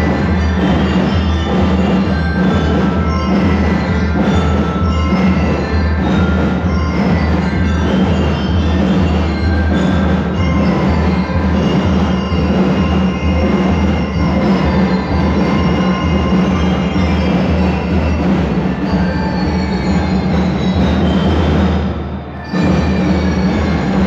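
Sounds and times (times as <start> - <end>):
bell lyres ringing a melody: 0.0 - 24.0
marching drums: 0.0 - 24.0.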